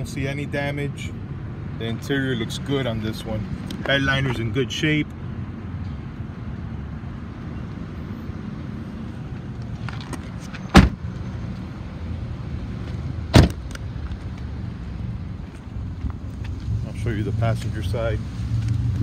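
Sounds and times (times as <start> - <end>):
car doors shutting: 9.9 - 11.0, 13.3 - 13.8.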